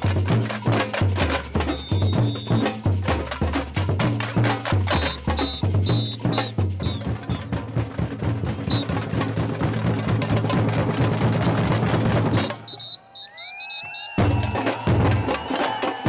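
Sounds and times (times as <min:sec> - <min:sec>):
samba drums and hand percussion: 0:00.0 - 0:12.9, 0:13.8 - 0:16.0
whistle blasts: 0:01.6 - 0:02.9, 0:04.9 - 0:07.5, 0:08.6 - 0:09.0, 0:12.3 - 0:16.0.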